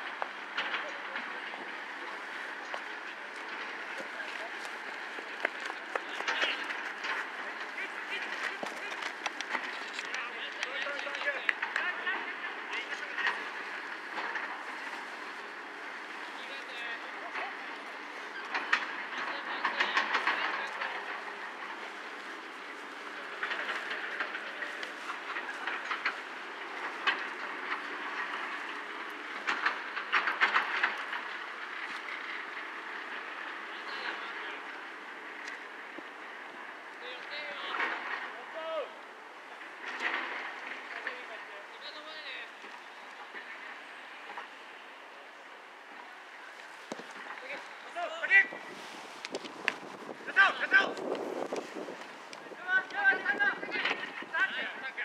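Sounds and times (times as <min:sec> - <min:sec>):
open-air background hum: 0:00.0 - 0:55.0
players shouting and calling: 0:46.9 - 0:55.0.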